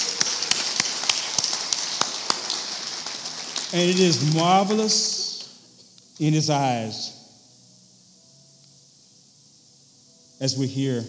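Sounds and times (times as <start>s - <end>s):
sharp hand claps: 0.0s - 5.6s
soft applause: 0.0s - 5.6s.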